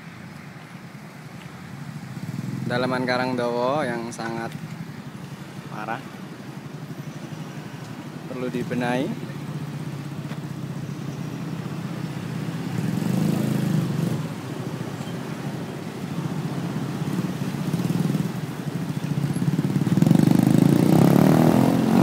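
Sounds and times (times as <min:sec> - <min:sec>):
car passing: 0:00.0 - 0:22.0
motorcycles passing: 0:00.0 - 0:22.0.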